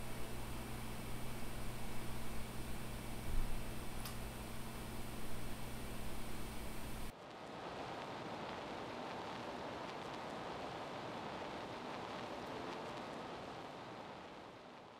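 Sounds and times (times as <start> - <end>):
low hum: 0.0 - 7.1
microphone hiss: 0.0 - 14.9.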